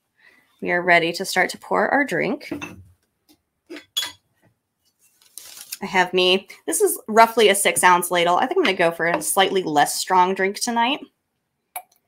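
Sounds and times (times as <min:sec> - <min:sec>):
metal ladle clinking: 0:03.7 - 0:04.2.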